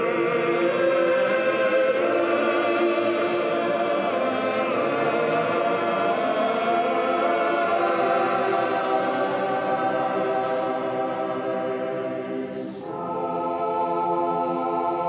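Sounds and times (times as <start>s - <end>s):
choir singing slow chant: 0.0s - 15.0s.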